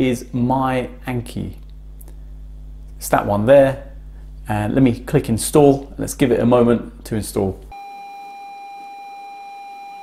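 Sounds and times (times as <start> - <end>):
steady electronic beep tone: 7.7 - 10.0.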